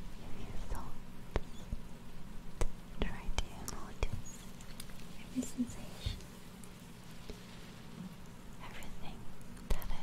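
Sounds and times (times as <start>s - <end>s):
soft whispering: 0.2s - 1.0s, 3.0s - 4.5s, 5.2s - 6.2s, 8.6s - 10.0s.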